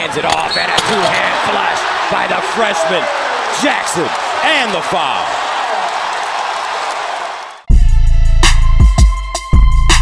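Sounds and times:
arena crowd noise: 0:00.0 - 0:07.7
hip-hop music with deep bass: 0:07.7 - 0:10.0.

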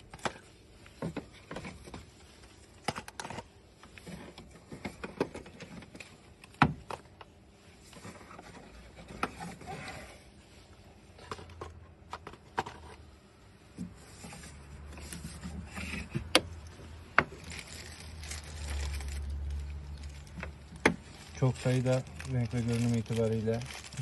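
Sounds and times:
clicks and scrapes in engine bay: 0:11.2 - 0:13.2, 0:13.8 - 0:23.9.

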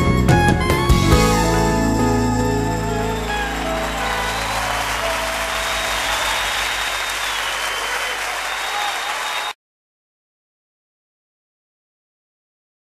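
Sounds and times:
band playing last notes: 0:00.6 - 0:07.6
audience applauding: 0:02.4 - 0:09.6.

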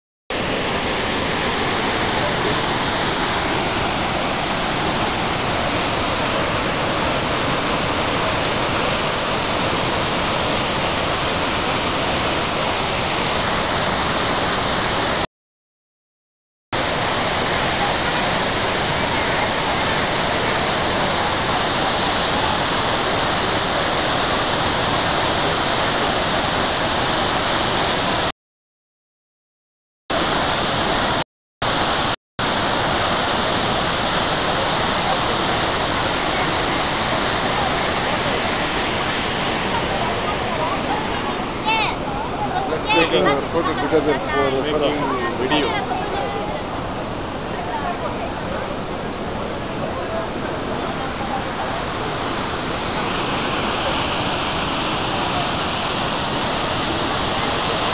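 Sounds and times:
waterfall rushing: 0:00.3 - 0:15.2, 0:16.8 - 0:28.3, 0:30.1 - 0:57.9.

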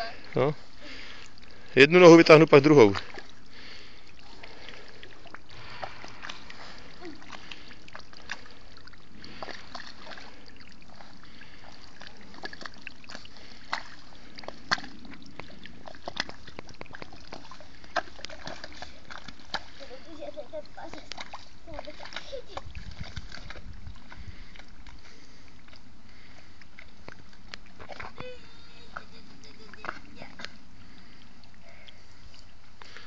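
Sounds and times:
boots wading through water: 0:00.0 - 0:33.0
sucking steps in mud: 0:00.0 - 0:33.0.

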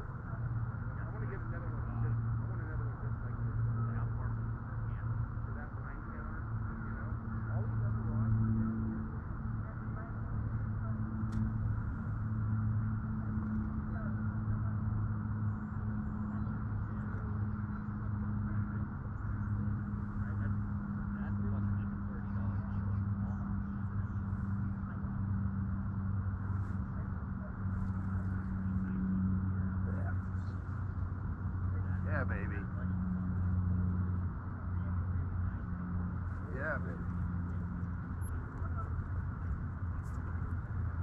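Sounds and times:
trolling motor electric hum: 0:00.0 - 0:41.0.

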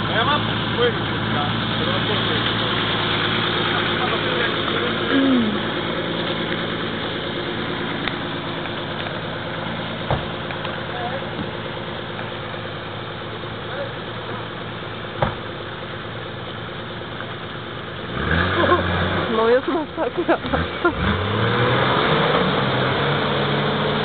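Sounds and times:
car engine idling: 0:00.0 - 0:21.4, 0:22.2 - 0:24.0.

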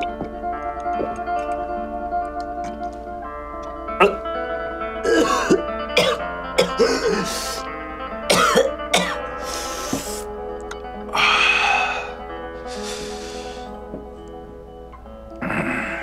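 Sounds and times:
soft background music: 0:00.0 - 0:16.0
man coughing and clearing throat: 0:04.0 - 0:04.2, 0:05.0 - 0:07.4, 0:08.3 - 0:09.3.

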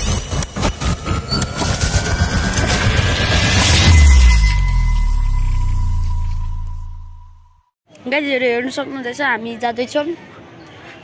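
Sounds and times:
thin whine rising in pitch: 0:00.0 - 0:07.7
dense low rumble: 0:00.5 - 0:07.6.

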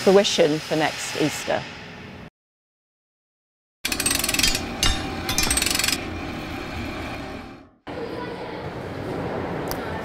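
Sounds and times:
rapid mechanical rattling: 0:03.8 - 0:06.2.

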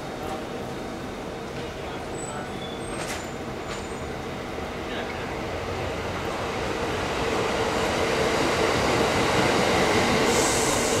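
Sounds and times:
electric train rolling past: 0:00.0 - 0:11.0
high hiss: 0:10.2 - 0:11.0.

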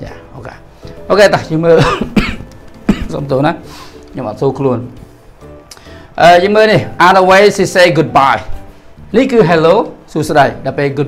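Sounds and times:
man talking: 0:00.0 - 0:02.1, 0:02.9 - 0:05.0, 0:06.2 - 0:11.0
background music: 0:00.0 - 0:11.0
man coughing: 0:01.8 - 0:03.2.

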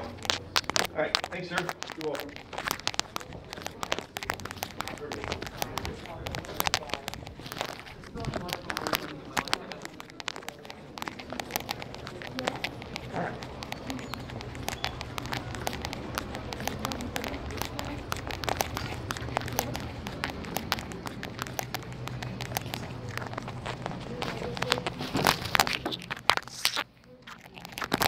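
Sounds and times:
phone microphone handling noise: 0:00.0 - 0:28.0.

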